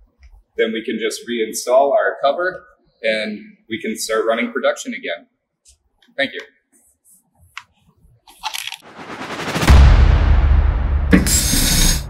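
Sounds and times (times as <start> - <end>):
rush of noise: 8.8 - 12.0
deep heavy rumble: 8.9 - 12.0.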